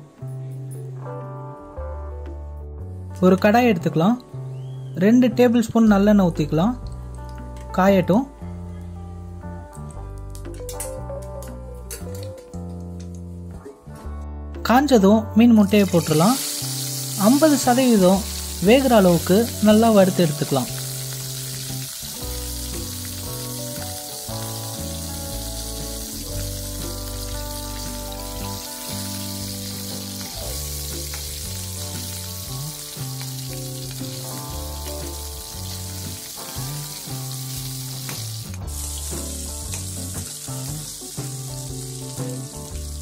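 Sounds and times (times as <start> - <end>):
background music low notes: 0.0 - 43.0
roe sizzling in oil: 15.6 - 43.0.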